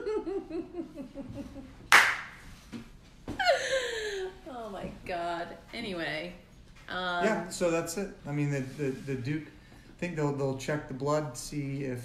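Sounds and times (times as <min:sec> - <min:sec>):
woman laughing: 0:00.0 - 0:01.8, 0:03.4 - 0:04.4.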